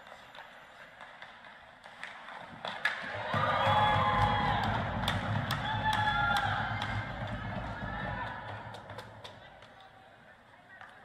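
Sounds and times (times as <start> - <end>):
hockey stick striking puck: 0.0 - 9.5
people shouting and cheering: 2.9 - 10.4.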